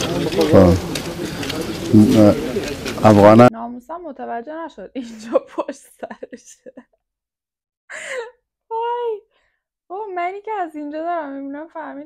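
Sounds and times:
men talking: 0.0 - 3.5
woman's voice: 3.5 - 6.8, 8.0 - 9.3, 9.9 - 12.0.

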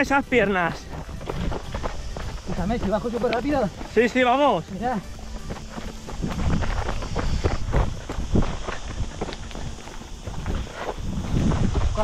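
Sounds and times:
footsteps running on dirt path: 0.0 - 12.0
trekking poles striking ground: 0.0 - 12.0.

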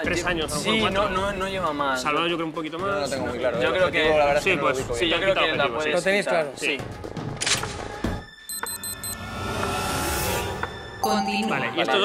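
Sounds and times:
suspenseful background music: 0.0 - 12.0
quick high beeps: 8.5 - 9.2.

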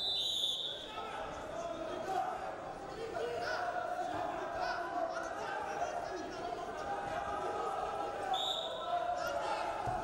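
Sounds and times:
referee's whistle: 0.0 - 0.9, 8.3 - 8.8
voices of coaches and crowd: 0.0 - 10.0.

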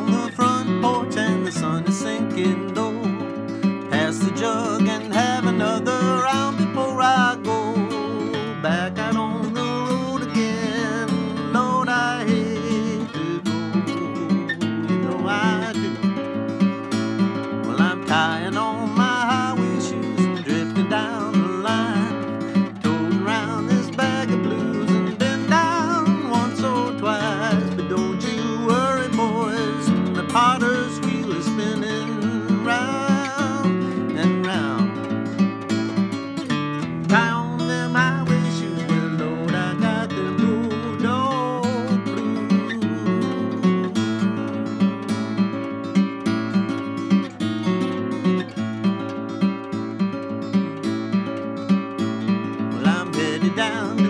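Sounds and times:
acoustic guitar playing blues: 0.0 - 54.0.

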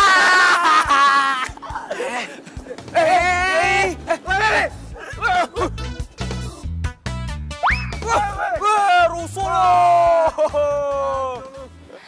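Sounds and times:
men exclaiming: 0.0 - 5.8, 8.0 - 11.7
comedic background music: 0.0 - 12.0.

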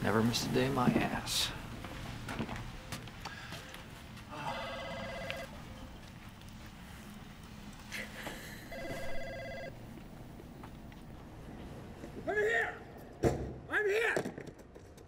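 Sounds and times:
telephone ringing: 4.4 - 5.6, 8.7 - 9.8.

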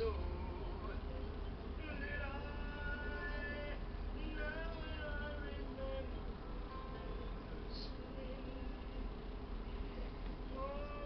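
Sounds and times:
faint music with held notes: 0.0 - 11.0
low electrical hum: 0.0 - 11.0.

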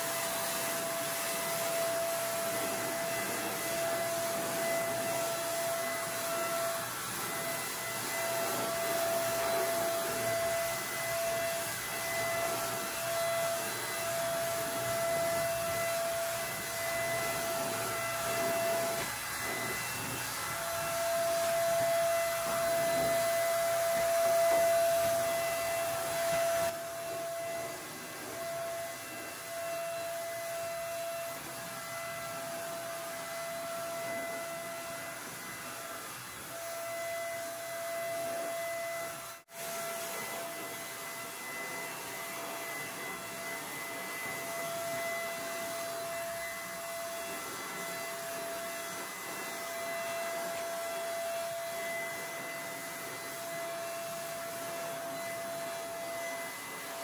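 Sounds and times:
paint sprayer turbine whine: 0.0 - 57.0.

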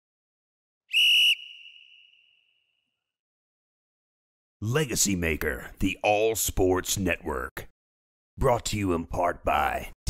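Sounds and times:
short high whistle blast: 0.9 - 2.7.

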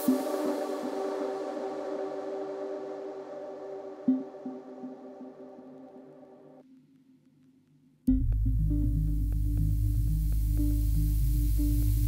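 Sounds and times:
sustained synthesizer chord: 0.0 - 6.6, 8.1 - 12.0
faint repeating low pulse: 8.1 - 12.0.

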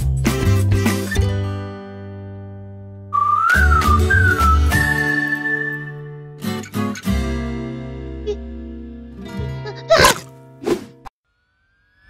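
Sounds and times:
whistled tune: 3.1 - 6.3.

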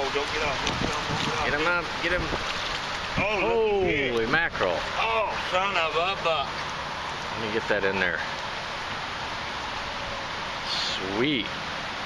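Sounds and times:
outdoor background hiss by water: 0.0 - 12.0.

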